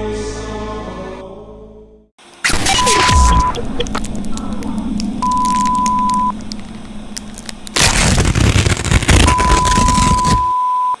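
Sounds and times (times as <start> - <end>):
burst of harsh noise: 2.2 - 10.5
crackle and hum: 2.2 - 11.0
electronic beep tone: 2.5 - 4.0, 5.2 - 6.4, 9.1 - 11.0.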